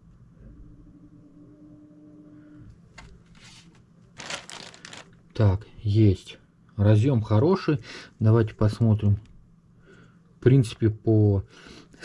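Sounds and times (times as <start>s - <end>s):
faint steady hum: 0.0s - 12.0s
cable rustle: 3.0s - 5.2s.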